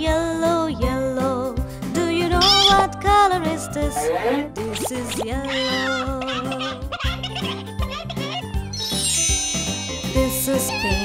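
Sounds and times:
bouncy children's song music: 0.0s - 11.0s
cartoon sound effects: 2.4s - 2.9s, 4.0s - 9.5s
twinkling magic chime: 8.7s - 11.0s.

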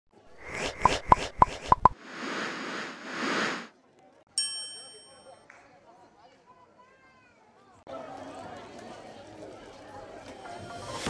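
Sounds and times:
swish: 0.3s - 3.7s.

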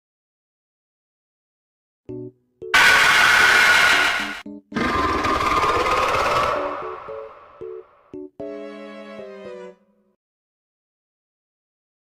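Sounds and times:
loud noisy sound effects: 2.8s - 7.6s.

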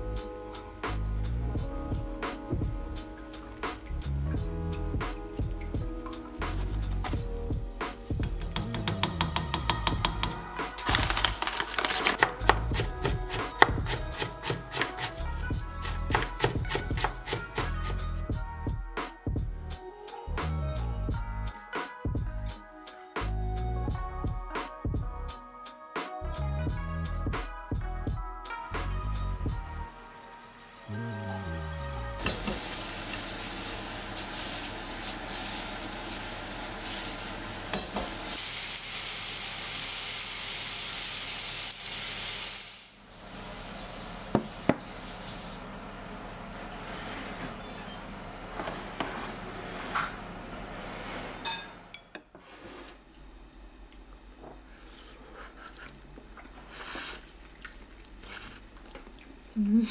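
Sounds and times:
food sizzling in a frying pan: 32.2s - 45.5s
dishes and spoon clinking: 51.4s - 52.3s.

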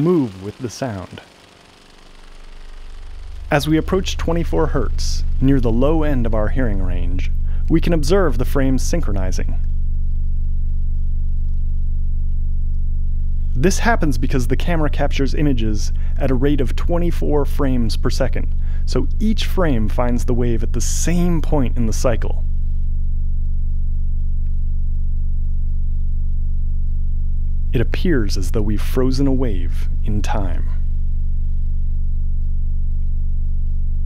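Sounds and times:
very low bass tone: 0.0s - 34.0s.

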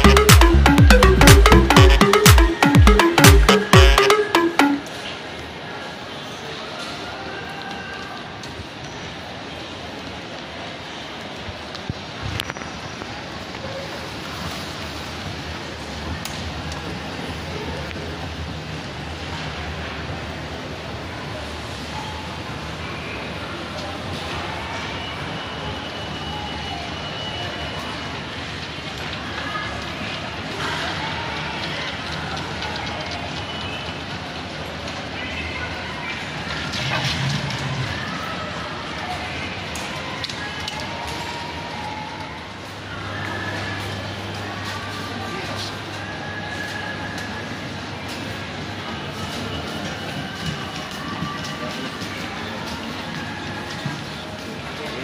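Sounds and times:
mall background noise: 0.0s - 55.0s
moving walkway hum and hiss: 4.8s - 55.0s.

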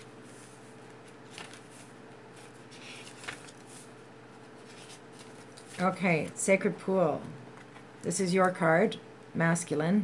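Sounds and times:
paper pages rustling: 0.0s - 6.4s
low steady hum: 0.0s - 10.0s
woman speaking: 5.8s - 7.4s, 8.0s - 10.0s.

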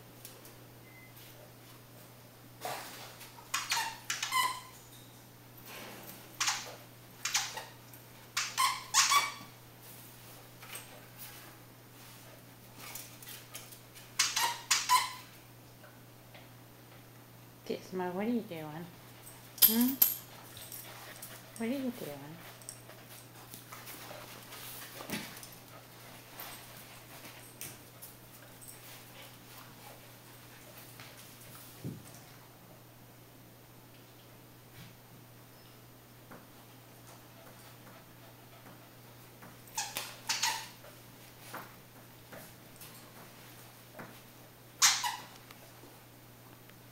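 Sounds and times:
dogs scuffling in wire crate: 2.6s - 6.8s, 19.2s - 32.2s
dog toy squeaks: 3.5s - 4.7s, 8.4s - 9.5s, 14.2s - 15.3s, 39.8s - 40.7s, 44.8s - 45.3s.

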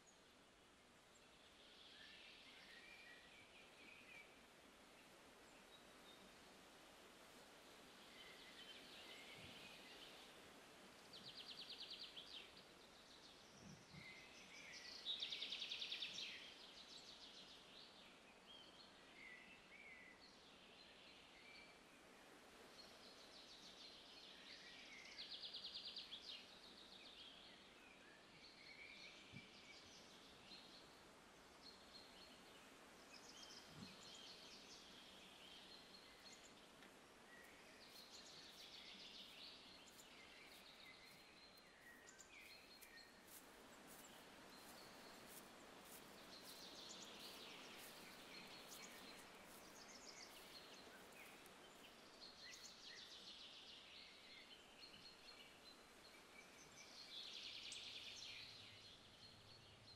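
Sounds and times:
birds chirping: 31.8s - 58.5s.

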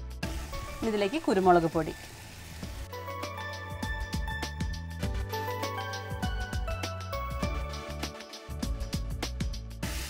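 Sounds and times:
background music: 0.0s - 10.0s
food sizzling in a frying pan: 0.2s - 3.0s.

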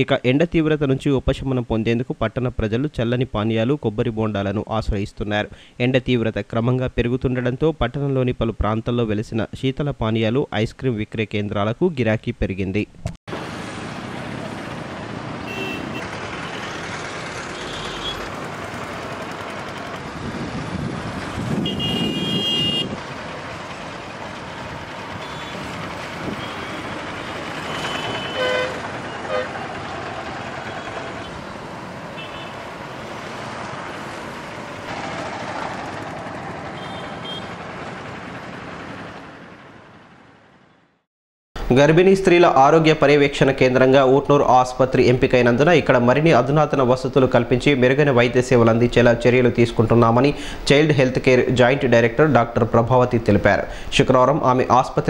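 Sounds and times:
motorcycles and rickshaws passing: 13.3s - 41.0s
short horn toots: 21.6s - 23.0s, 27.7s - 29.6s.

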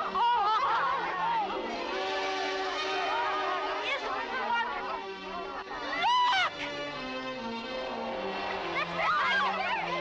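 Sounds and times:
excited voices calling out: 0.0s - 6.8s, 8.2s - 10.0s
orchestral score held notes: 0.0s - 10.0s.

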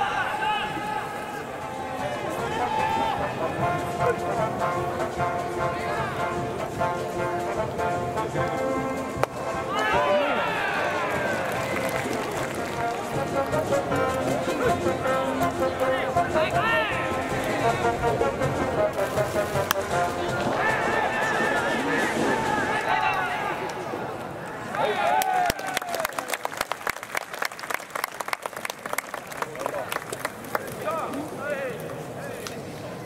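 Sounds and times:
crowd shouting: 0.0s - 3.4s, 9.5s - 12.4s, 19.9s - 26.0s
held instrumental notes: 2.3s - 21.7s
crowd chanting: 19.9s - 24.1s.

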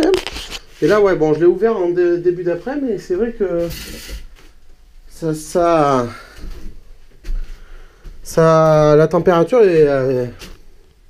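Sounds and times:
man speaking: 0.8s - 4.2s, 5.1s - 6.4s, 8.2s - 10.5s.

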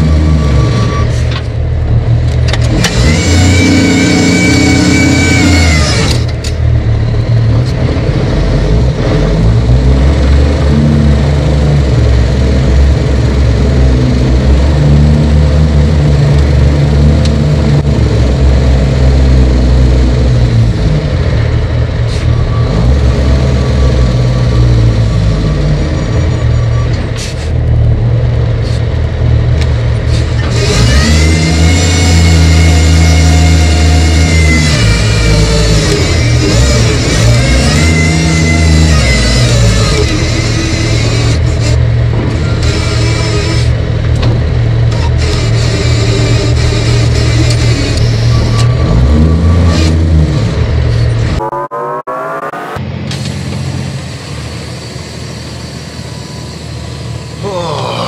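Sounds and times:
diesel engine revving: 0.0s - 58.0s.

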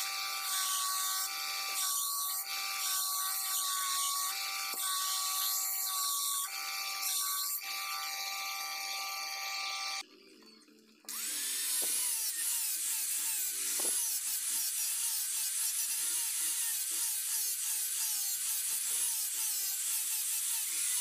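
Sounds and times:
belt grinder motor whine: 0.0s - 10.0s, 11.1s - 17.4s.

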